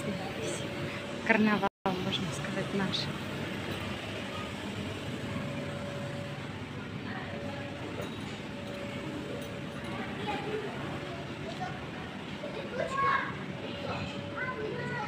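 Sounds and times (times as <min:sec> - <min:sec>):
distant voices in a hall: 0:00.0 - 0:15.0
room hum: 0:00.0 - 0:15.0.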